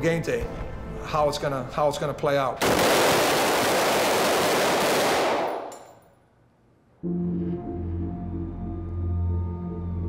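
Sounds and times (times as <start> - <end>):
rapid gunfire: 2.6 - 5.7.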